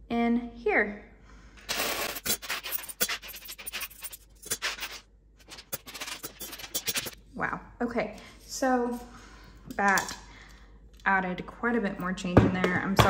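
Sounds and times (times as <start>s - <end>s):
coins clinking into glass jar: 1.7s - 7.2s
rush of clattering coins: 1.7s - 7.2s.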